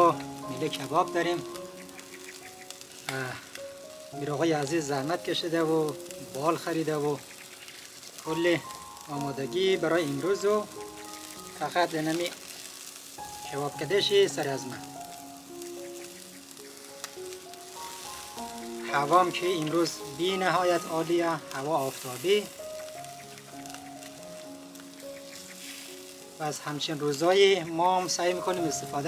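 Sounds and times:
chicken wings sizzling on grill: 0.0s - 29.0s
slow melodic music: 0.0s - 29.0s.

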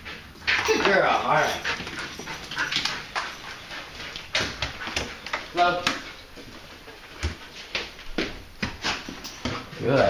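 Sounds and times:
dog sniffing: 0.6s - 8.0s.

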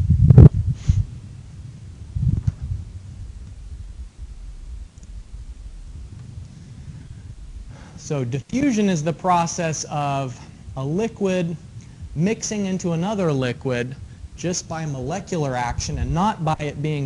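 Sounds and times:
dull low thuds: 0.0s - 9.4s, 10.4s - 17.0s
faint low rumble: 0.0s - 17.0s.

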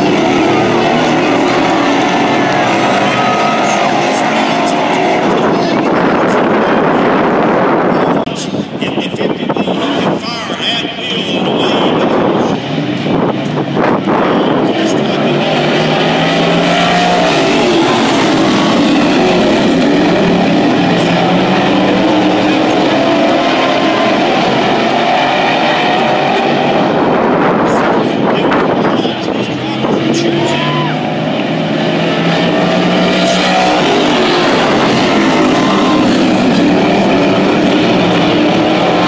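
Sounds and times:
race car engines at full throttle: 0.0s - 39.0s.

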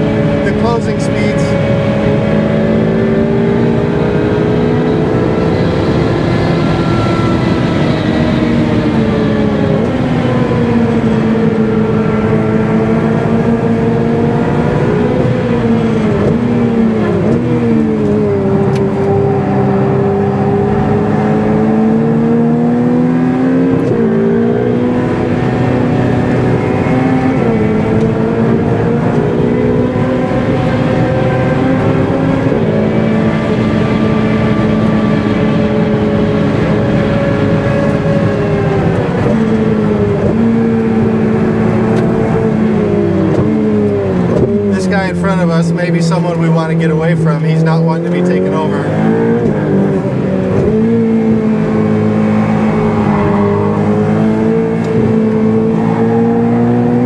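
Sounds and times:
sports car engine revving: 0.0s - 57.0s.

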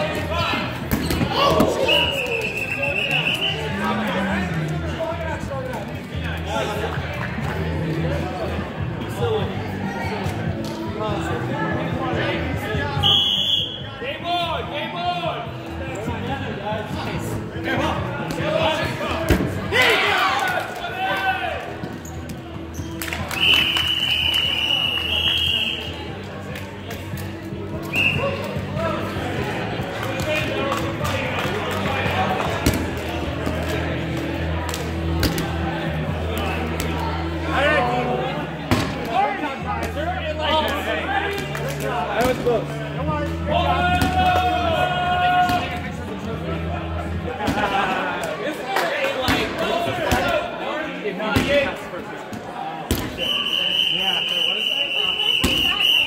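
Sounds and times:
referee's whistle blowing: 1.8s - 3.8s, 13.0s - 13.9s, 23.3s - 26.0s, 27.9s - 28.4s, 53.1s - 56.0s
players shouting: 18.6s - 21.8s, 43.3s - 46.1s.

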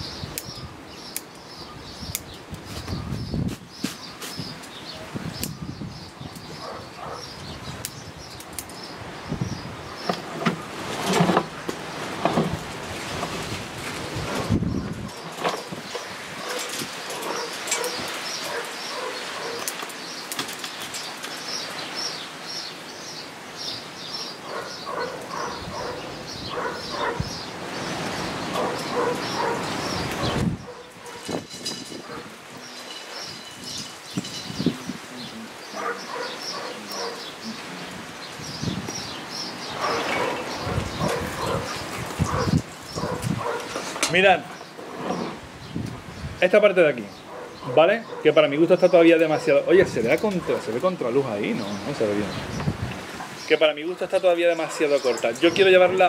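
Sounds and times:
birds chirping: 0.0s - 56.0s
wind on microphone: 1.6s - 19.7s, 24.4s - 44.1s, 44.9s - 46.4s, 51.7s - 53.4s.

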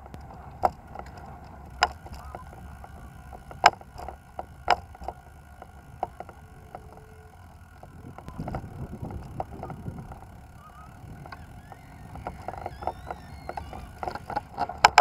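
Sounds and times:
clicks and rattles: 0.0s - 15.0s
vehicle rolling over paving: 0.0s - 15.0s
wind on microphone: 5.7s - 15.0s.

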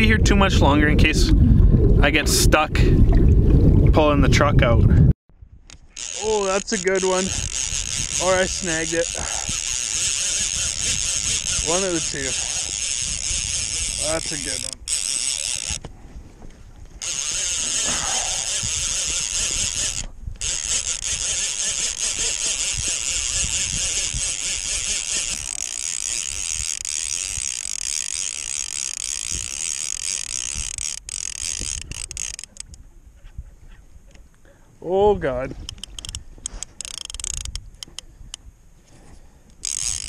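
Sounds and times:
fishing reel whirring: 5.7s - 15.8s, 17.0s - 32.8s, 35.6s - 38.4s, 39.5s - 40.0s.

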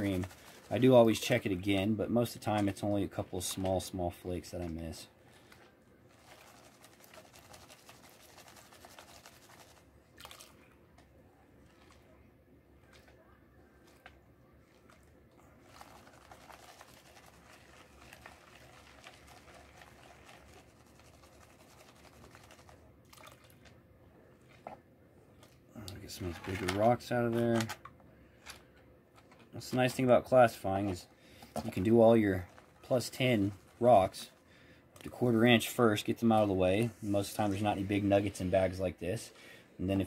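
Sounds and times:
water and grit swishing in pan: 0.0s - 3.8s, 15.7s - 22.8s, 30.5s - 34.4s.

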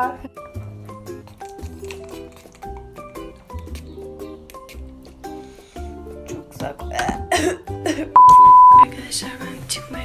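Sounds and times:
background music: 0.0s - 10.0s
loud flat electronic beep: 8.2s - 8.8s.

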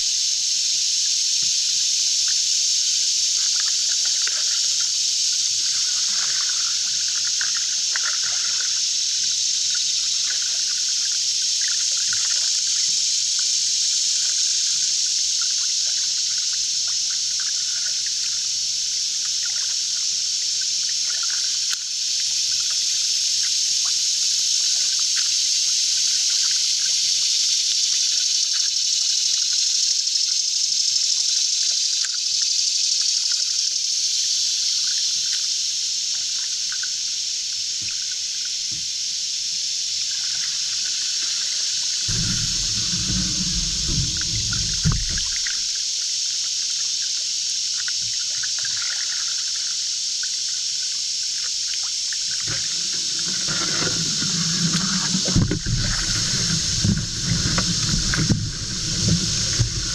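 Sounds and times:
steady high hiss: 0.0s - 59.9s
water trickling and dripping: 36.3s - 46.6s, 47.7s - 59.9s.

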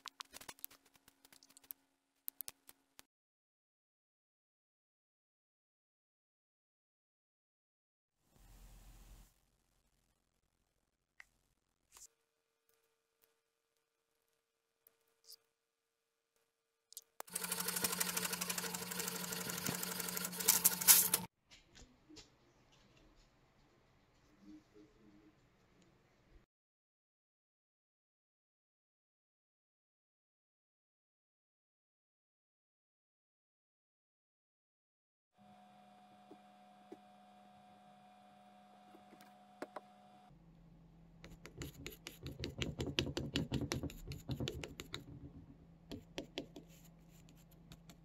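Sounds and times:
print head ticking: 17.2s - 21.3s
inkjet printer whirring: 17.3s - 21.3s.

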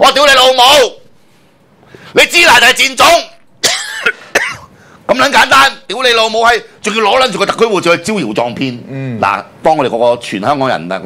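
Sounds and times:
man coughing: 3.6s - 4.8s.

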